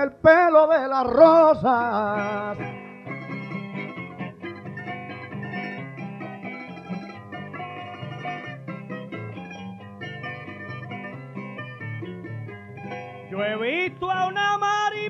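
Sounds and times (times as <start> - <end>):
guitar and plucked strings playing: 0.0 - 15.0.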